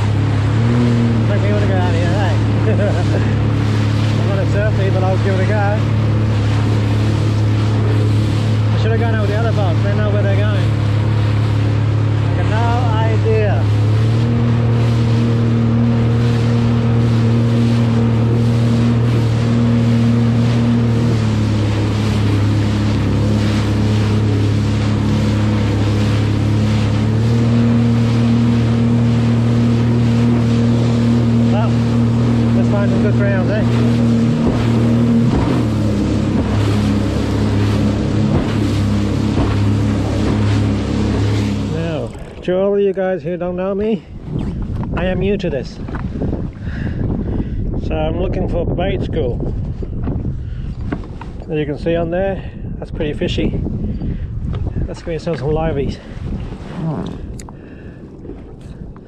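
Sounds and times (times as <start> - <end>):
jet ski engine running: 0.0 - 59.0.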